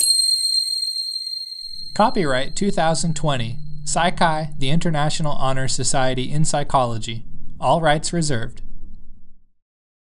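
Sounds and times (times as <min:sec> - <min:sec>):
high bell-like chime: 0:00.0 - 0:05.1.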